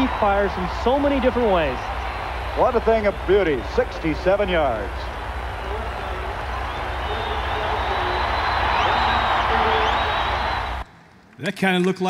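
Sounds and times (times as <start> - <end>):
stadium crowd cheering: 0.0 - 10.9.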